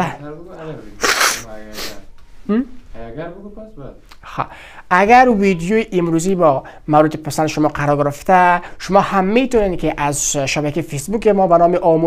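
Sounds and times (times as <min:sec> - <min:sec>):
man sneezing: 0:01.0 - 0:02.0.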